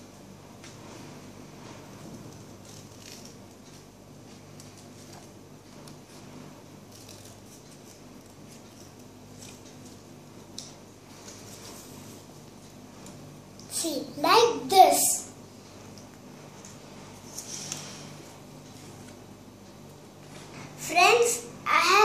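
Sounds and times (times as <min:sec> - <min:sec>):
steady low hum: 0:00.0 - 0:22.0
paper crinkling: 0:06.8 - 0:10.1.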